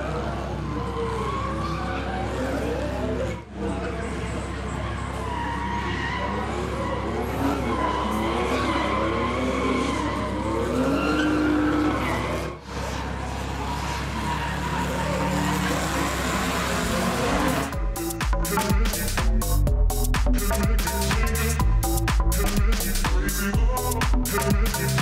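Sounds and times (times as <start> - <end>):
car engines revving hard: 0.0 - 19.6
tyres skidding on tarmac: 4.2 - 17.7.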